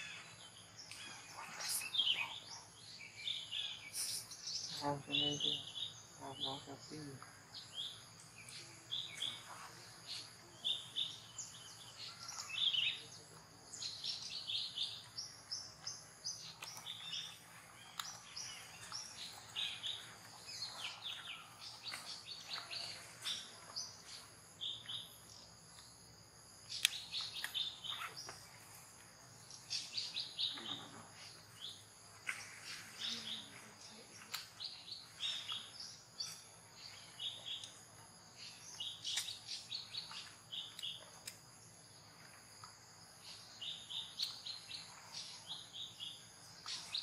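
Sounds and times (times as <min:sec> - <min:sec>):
birds chirping: 0:00.0 - 0:47.0.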